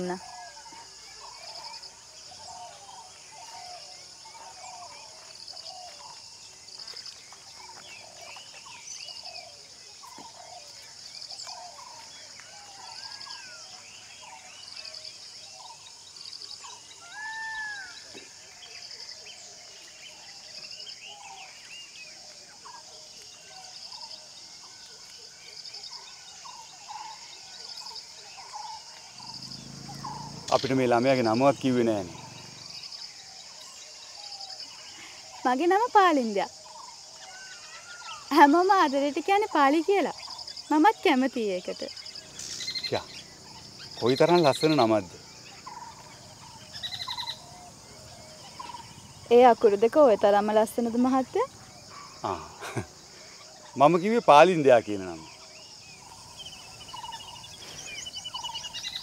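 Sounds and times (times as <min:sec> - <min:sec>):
insect trill: 0:00.0 - 0:59.0
small birds chirping: 0:00.0 - 0:59.0
loud rising and falling call: 0:29.2 - 0:32.8.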